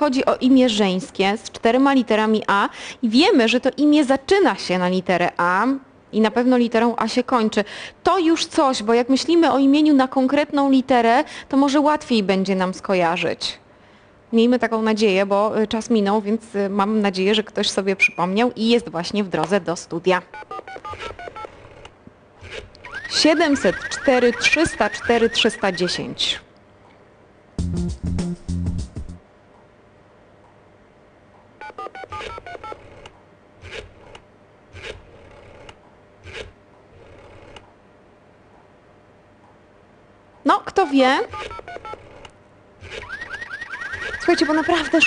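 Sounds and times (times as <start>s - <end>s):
electronic dialing beeps: 20.3s - 21.6s, 22.9s - 26.0s, 31.6s - 32.8s, 41.3s - 42.0s
telephone keypad tones: 20.3s - 21.6s, 31.6s - 32.9s, 41.3s - 42.1s.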